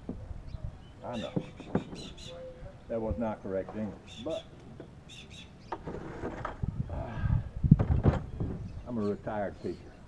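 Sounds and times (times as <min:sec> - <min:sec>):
high bird chirps: 0:00.5 - 0:02.6, 0:05.1 - 0:05.8
plastic crate knocking and thumping: 0:07.7 - 0:08.6.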